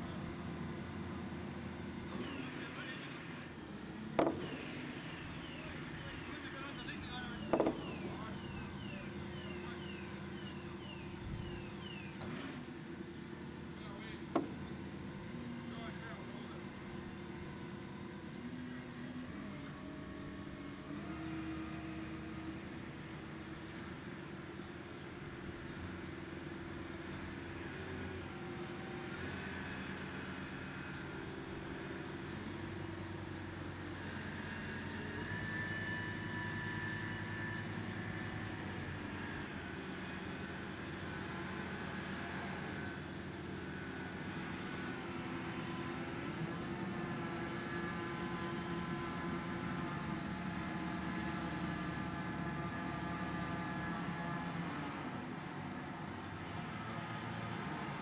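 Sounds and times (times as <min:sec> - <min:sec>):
crane diesel engine running: 0:00.0 - 0:58.0.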